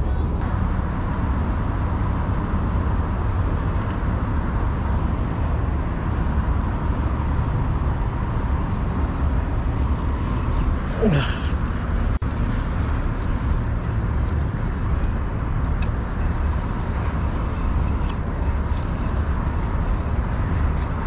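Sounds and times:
distant road traffic: 0.0s - 21.0s
wind rumble: 0.0s - 21.0s.

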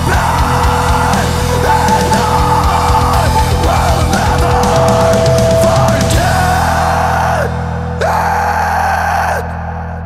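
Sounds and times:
heavy band with distorted guitars: 0.0s - 10.0s.

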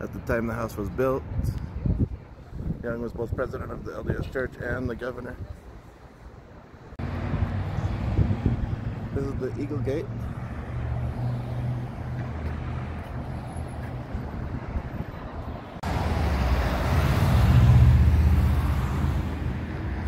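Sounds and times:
engine and tyre rumble: 6.1s - 20.0s
passing vehicle rumble: 6.1s - 20.0s.

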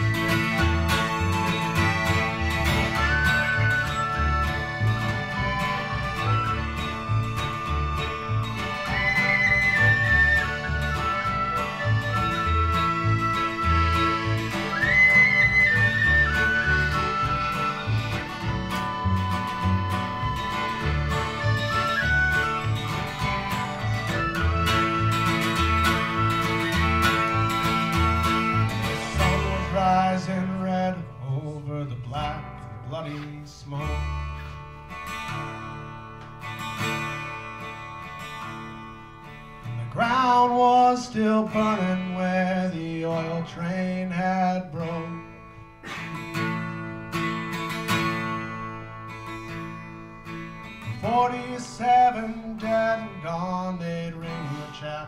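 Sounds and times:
high sliding lead melody: 0.0s - 30.2s
strummed acoustic guitar: 0.0s - 55.0s.

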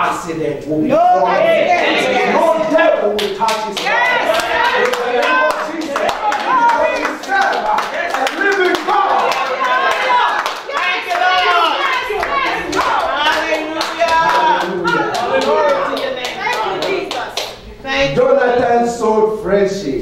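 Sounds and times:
voices calling out together: 0.8s - 17.4s
congregation clapping: 1.8s - 17.6s.

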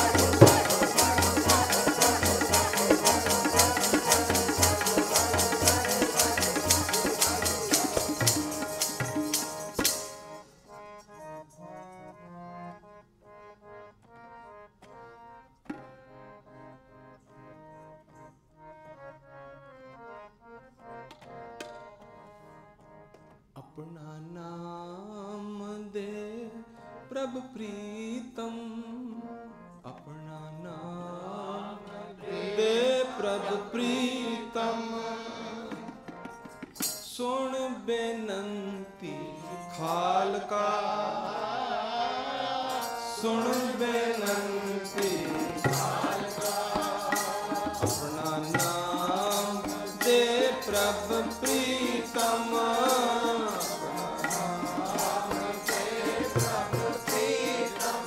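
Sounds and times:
man singing a hymn: 0.0s - 9.1s, 23.6s - 36.0s, 37.0s - 58.0s
harmonium melody: 0.0s - 58.0s.

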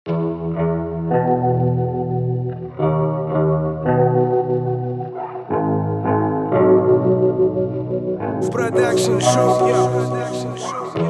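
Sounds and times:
guitar playing sustained chords: 0.1s - 11.0s.

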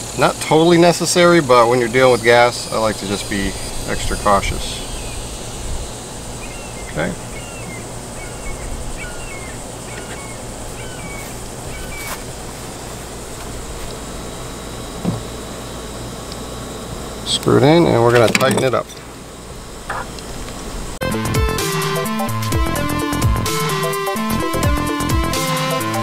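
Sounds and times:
steady low hum: 0.0s - 26.0s
bird chirping: 1.8s - 5.5s, 6.3s - 12.3s.

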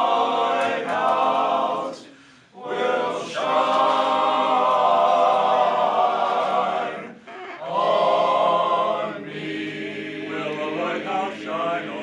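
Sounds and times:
men's chorus singing a cappella: 0.0s - 12.0s.

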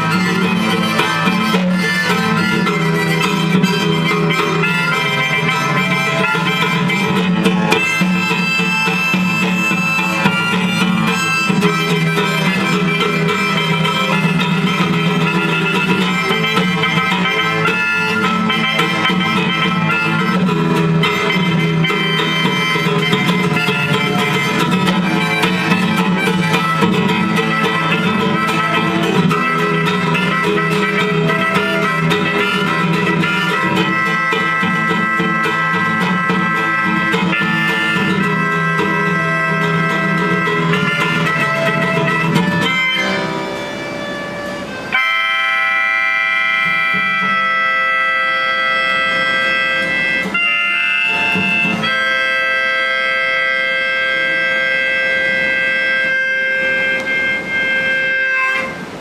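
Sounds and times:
fiddle: 0.0s - 59.0s
harmonica through microphone: 0.0s - 59.0s
strummed acoustic guitar: 0.0s - 59.0s.

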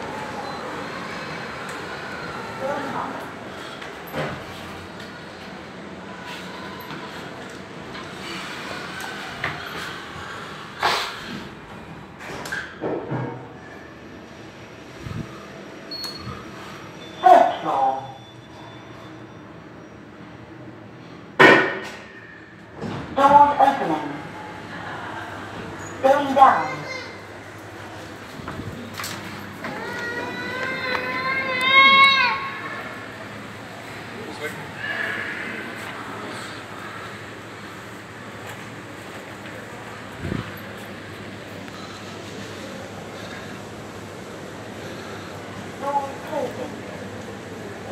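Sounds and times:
lift car hum and air noise: 0.0s - 47.9s.

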